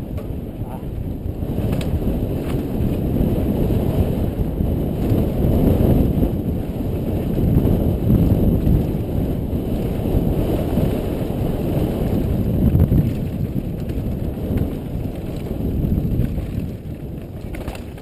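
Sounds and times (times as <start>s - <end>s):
tyres rolling over dry dirt: 0.0s - 18.0s
wind buffeting microphone: 0.0s - 18.0s
light clicks from bike: 1.7s - 2.6s.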